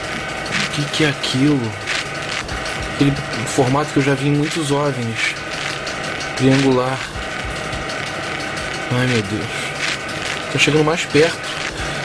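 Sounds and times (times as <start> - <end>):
fast mechanical clicking rattle: 0.0 - 12.0.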